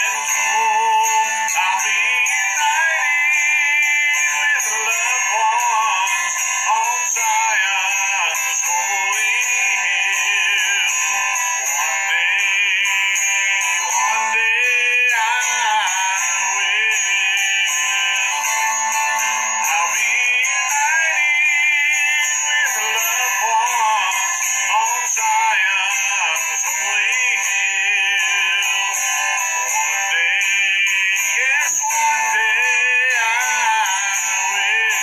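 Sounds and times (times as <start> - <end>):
man singing slow song: 0.0 - 35.0.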